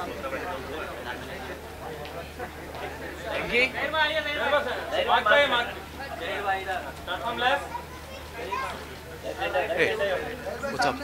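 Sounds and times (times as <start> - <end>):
several people talking: 0.0 - 11.0.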